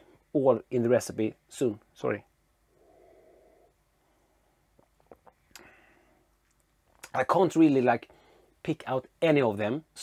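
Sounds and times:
short faint breath: 2.7s - 4.6s, 5.6s - 6.3s
faint mouth clicks: 5.1s - 5.7s.

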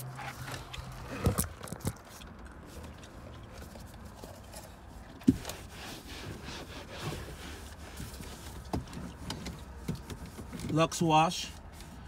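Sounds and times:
cloth rubbing on dashboard: 4.5s - 12.0s.

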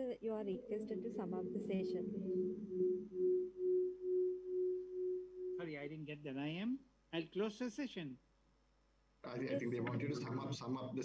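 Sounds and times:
audio feedback whistling: 0.0s - 5.9s.

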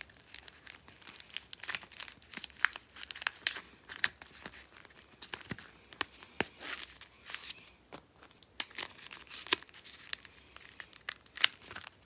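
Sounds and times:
plastic sleeves crinkling: 0.0s - 12.0s.

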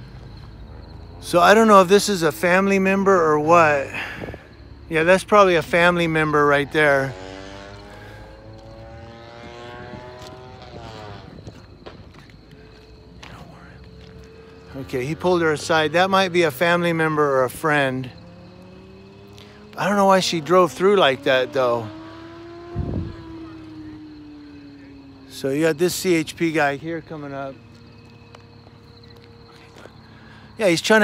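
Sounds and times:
engine droning: 0.0s - 31.0s.

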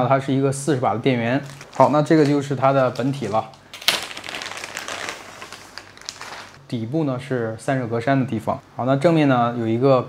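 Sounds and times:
plastic bag crinkling: 1.4s - 6.6s.

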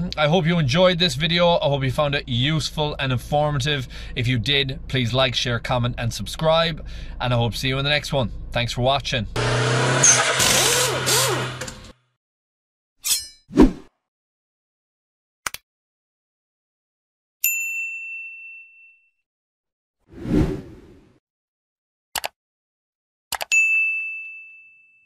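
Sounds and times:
mouse double click: 23.3s - 23.5s
bright bell ding: 23.5s - 25.0s.

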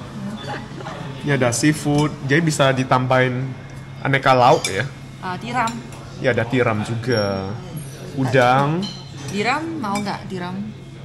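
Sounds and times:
dishes and cutlery clinking: 0.4s - 2.8s, 3.7s - 5.0s, 5.6s - 10.3s.

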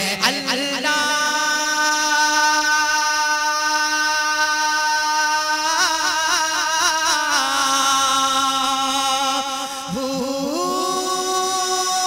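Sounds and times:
person singing long note: 9.9s - 12.0s.

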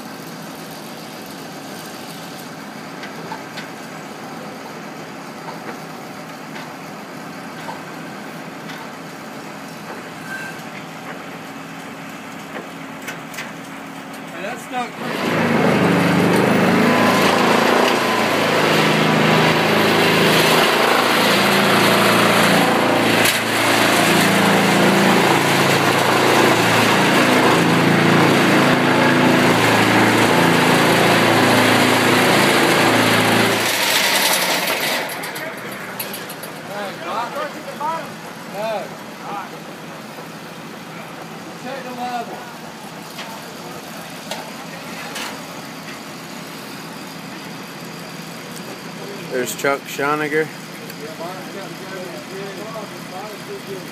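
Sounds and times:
engine running quietly: 0.0s - 53.9s
vibratory pile hammer drone: 15.0s - 37.2s.

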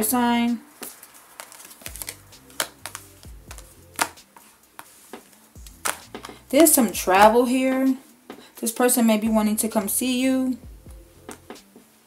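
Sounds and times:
faint background music: 0.0s - 12.0s
cards snapped onto table: 0.8s - 6.4s.

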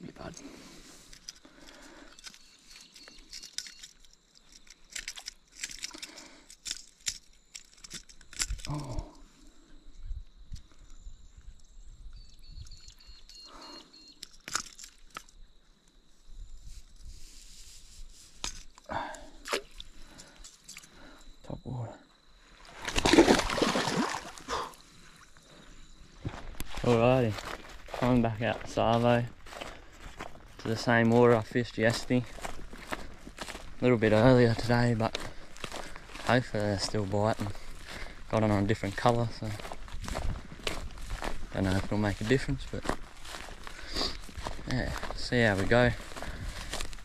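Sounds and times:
fish splashing in shallow water: 19.4s - 20.9s, 22.5s - 25.4s.

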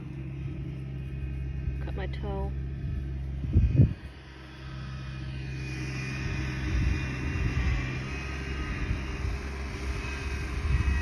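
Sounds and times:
truck engine rumbling: 0.0s - 11.0s.

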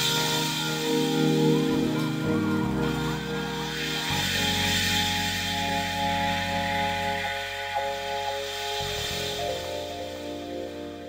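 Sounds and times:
hissing noise: 0.0s - 11.0s
low drone: 0.0s - 11.0s.

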